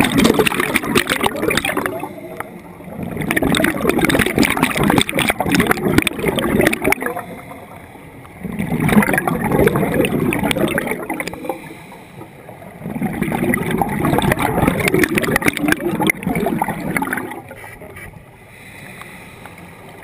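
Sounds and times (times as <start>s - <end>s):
diver's bubbles gurgling underwater: 0.0s - 7.6s, 8.3s - 11.8s, 12.6s - 17.5s.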